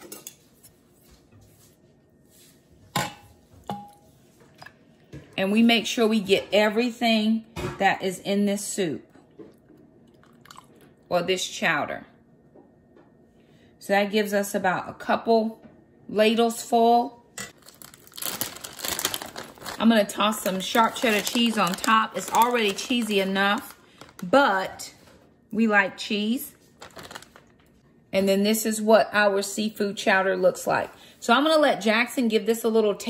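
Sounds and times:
plastic bag crinkling: 17.6s - 24.4s, 26.5s - 27.8s.

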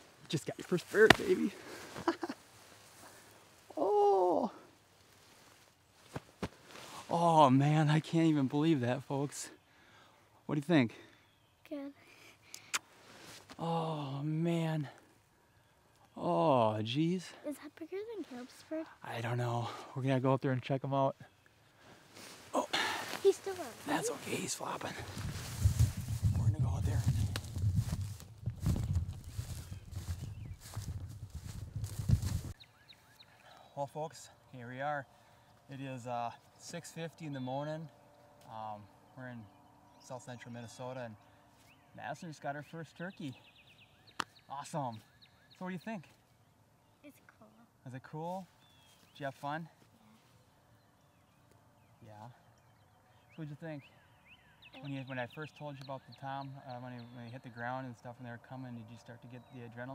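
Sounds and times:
footsteps through grass: 4.8s - 7.1s, 21.8s - 33.1s, 48.4s - 50.5s
clothing rustling: 22.1s - 26.2s.

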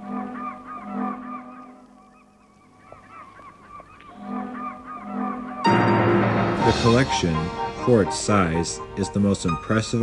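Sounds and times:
seagulls crying: 0.0s - 10.0s.

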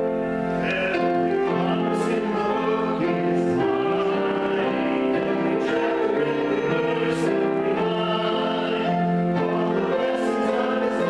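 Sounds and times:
grand piano: 0.0s - 11.0s
congregation singing a hymn: 0.6s - 11.0s.

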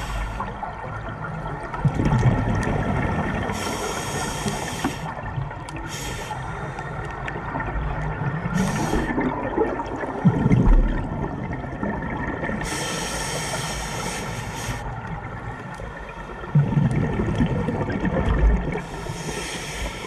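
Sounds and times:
regulator hissing inhale: 0.0s - 0.6s, 3.5s - 5.2s, 5.8s - 7.2s, 8.6s - 9.2s, 12.6s - 15.0s, 18.8s - 20.0s
bubbling exhale: 8.4s - 11.0s.

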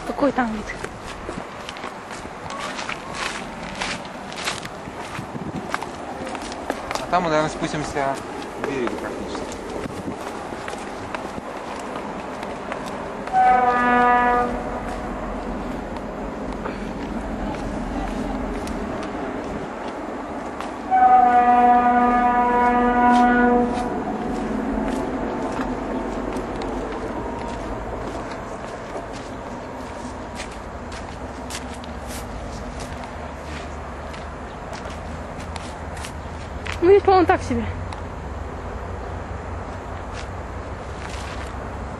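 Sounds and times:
outdoor background noise: 0.0s - 41.9s
long horn blasts: 13.2s - 15.6s, 20.8s - 25.4s.

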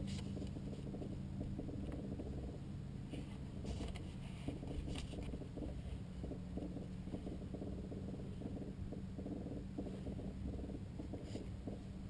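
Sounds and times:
piston engine idling: 0.0s - 12.0s.

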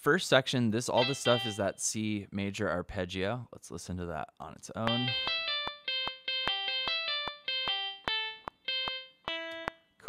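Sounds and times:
guitar arpeggio: 1.0s - 1.7s, 4.9s - 9.8s.

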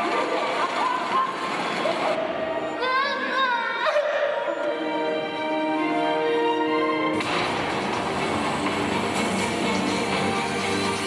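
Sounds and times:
film music over speakers: 2.2s - 11.0s.

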